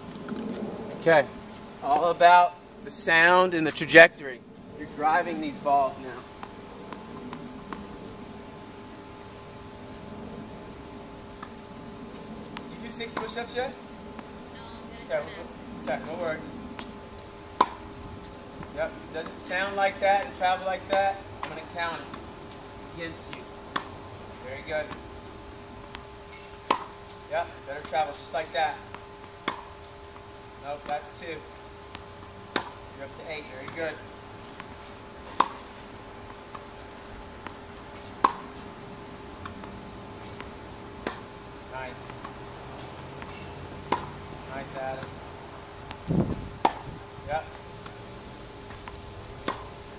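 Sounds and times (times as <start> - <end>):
tennis racket hitting ball: 25.8 - 27.0, 29.4 - 29.8, 31.9 - 32.8, 34.6 - 36.8, 37.4 - 38.6, 39.4 - 41.3, 42.0 - 45.2, 45.9 - 46.9, 48.7 - 49.8.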